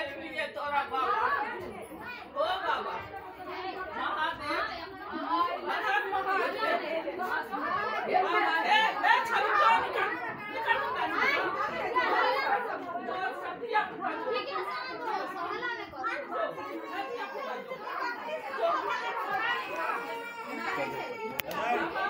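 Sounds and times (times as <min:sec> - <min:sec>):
overlapping chatter: 0:00.0 - 0:22.0.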